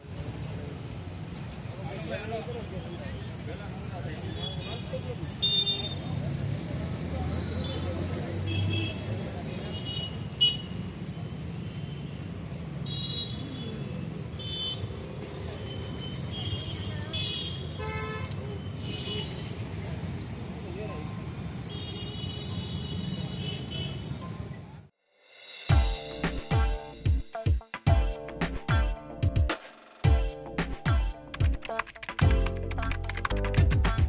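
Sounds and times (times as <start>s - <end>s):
road traffic: 0.0s - 34.0s
vehicle horns tooting: 4.3s - 6.1s, 15.7s - 19.5s
person talking: 30.9s - 34.0s.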